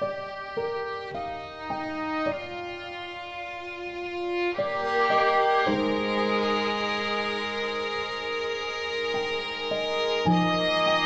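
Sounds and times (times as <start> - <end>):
slow violin melody: 0.0 - 11.0.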